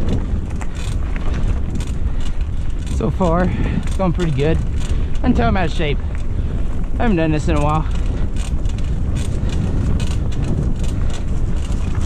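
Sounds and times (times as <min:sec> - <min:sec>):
bike clicks and rattles: 0:00.0 - 0:12.0
bike tyres rumbling on dirt: 0:00.0 - 0:12.0
wind on microphone: 0:00.0 - 0:12.0.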